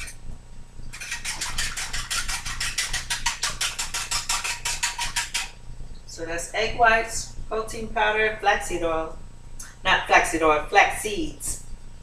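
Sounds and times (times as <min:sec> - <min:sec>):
utensil beating batter in bowl: 0:00.9 - 0:05.6.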